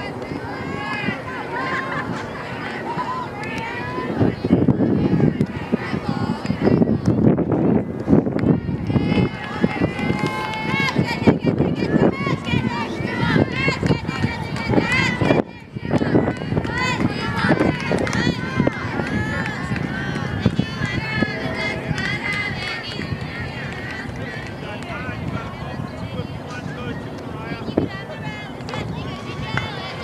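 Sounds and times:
high-pitched voices cheering: 8.5 - 23.9.

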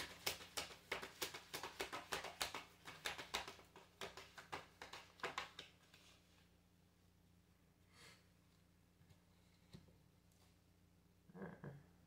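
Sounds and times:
cards being shuffled by hand: 0.0 - 6.5.

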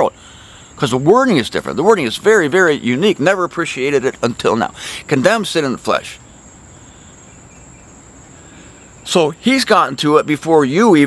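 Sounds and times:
insects trilling: 0.0 - 11.0
low outdoor hum: 0.0 - 11.0.

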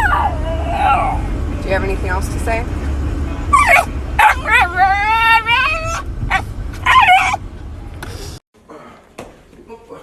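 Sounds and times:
puppy yipping and yowling: 0.0 - 1.3, 3.5 - 7.4.

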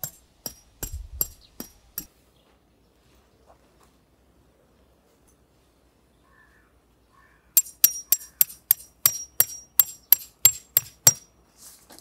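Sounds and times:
hammer striking metal tent peg: 0.0 - 2.1, 7.6 - 11.3.

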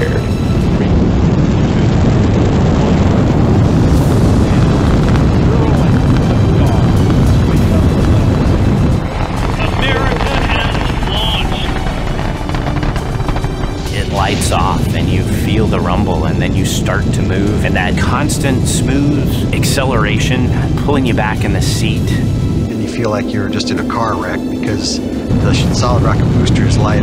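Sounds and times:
rocket engines rumbling: 0.0 - 27.0.

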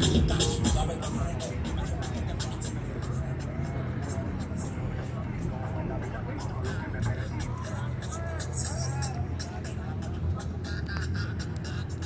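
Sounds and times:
car engines running: 0.0 - 12.0
crowd voices: 0.0 - 12.0
faint music: 0.0 - 12.0.

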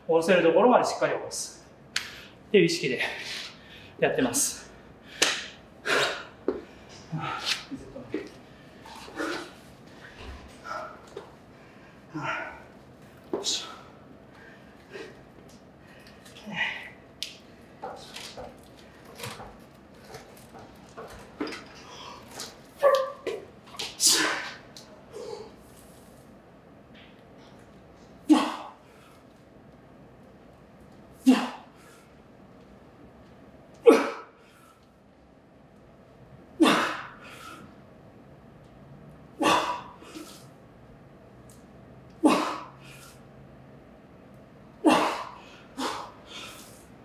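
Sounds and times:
man grunting: 12.1 - 12.7, 16.4 - 17.0, 28.3 - 28.8, 31.2 - 31.7
man breathing forcefully: 44.9 - 46.9.

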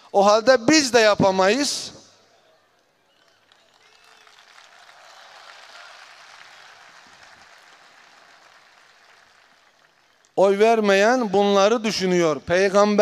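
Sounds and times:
faint audience applause: 2.4 - 10.4.

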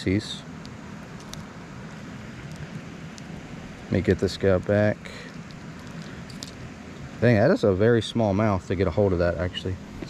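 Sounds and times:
steady outdoor background rush: 0.0 - 10.0
man speaking: 3.9 - 5.3, 7.2 - 9.8.

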